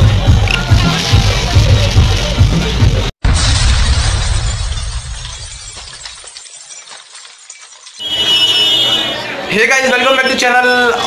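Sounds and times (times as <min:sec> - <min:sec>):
shattering glass crash: 0:03.2 - 0:08.6.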